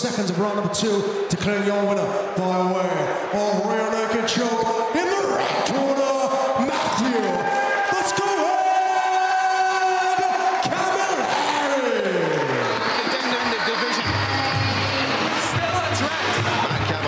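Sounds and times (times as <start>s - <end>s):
crowd noise: 0.0s - 17.0s.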